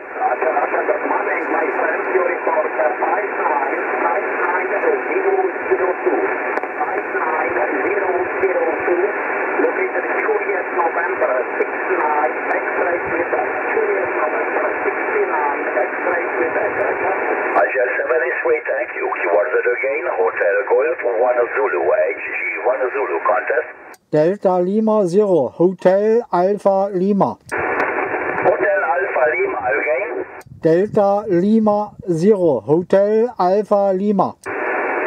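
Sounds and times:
faint garbled radio voices: 0.0s - 24.1s, 26.2s - 35.0s
radio receiver hiss: 0.0s - 35.0s.

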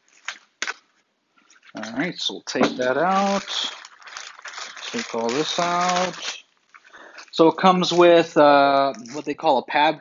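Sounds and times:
plastic bag crinkling: 0.0s - 2.1s, 2.8s - 9.4s.

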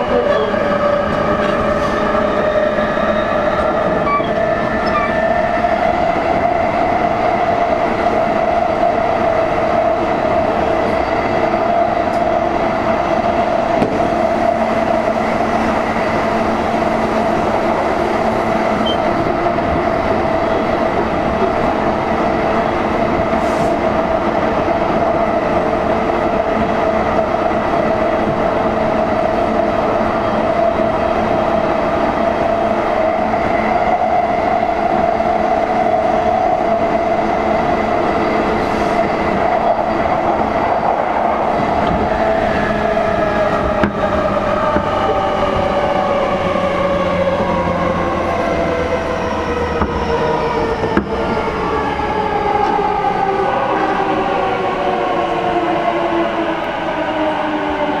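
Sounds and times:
wheel-on-rail rumble: 41.6s - 53.4s.

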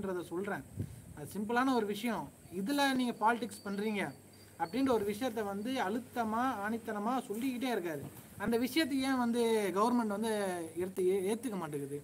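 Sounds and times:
cricket chirping: 0.0s - 12.0s
man talking: 0.0s - 12.0s.

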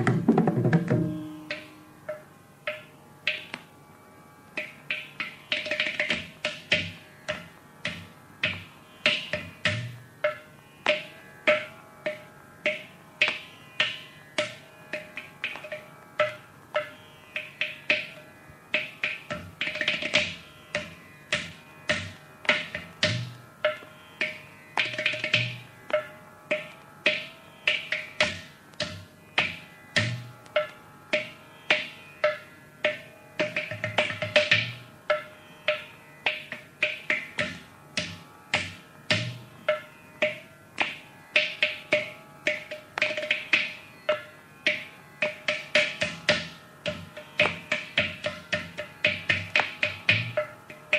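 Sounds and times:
hand drum strokes: 0.0s - 3.4s.

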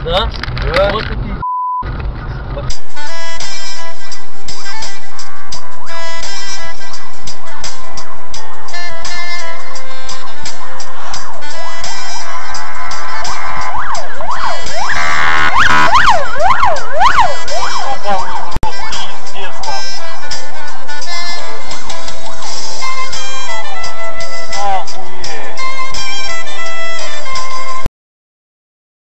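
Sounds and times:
loud background music: 2.7s - 27.9s
siren rising and falling: 5.7s - 20.0s, 20.9s - 24.9s.

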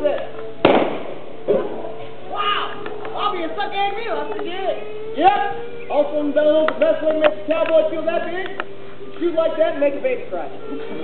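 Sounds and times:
revolver gunshot: 0.6s - 1.8s.

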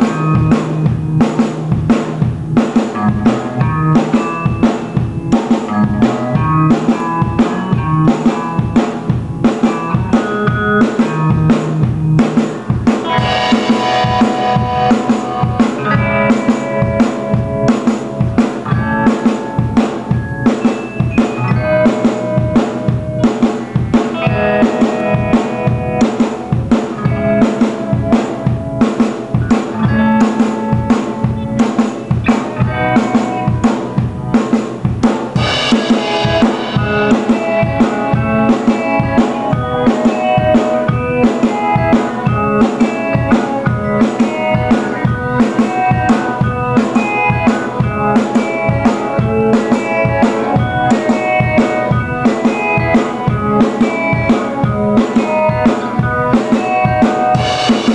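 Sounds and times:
drum kit beat: 0.0s - 57.9s
live rock band playing: 0.0s - 57.9s.

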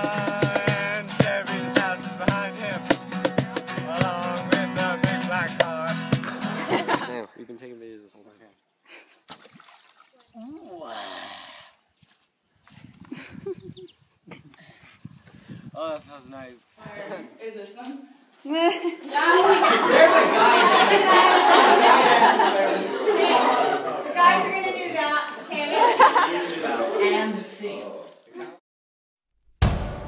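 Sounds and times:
acoustic guitars strummed: 0.0s - 7.1s
cajon beat: 0.0s - 7.1s
voices singing: 0.0s - 7.2s, 19.0s - 28.0s
water splash: 9.3s - 10.8s.

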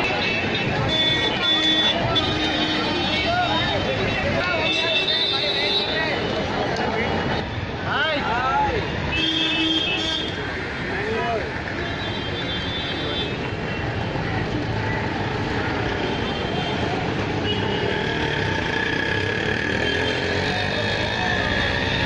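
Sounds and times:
crowd chatter: 0.0s - 22.0s
road traffic noise: 0.0s - 22.0s.

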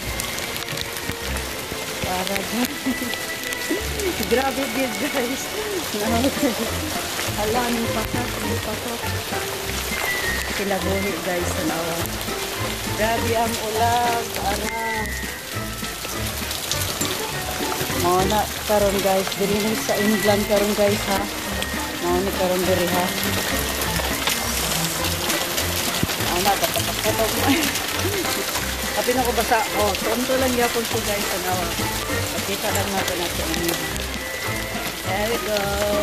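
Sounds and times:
hail striking the ground: 0.0s - 36.0s
music: 0.0s - 36.0s.

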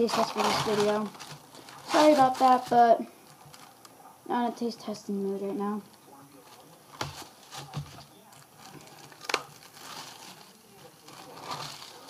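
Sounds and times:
plastic film crinkling: 0.0s - 4.1s, 6.2s - 12.0s.

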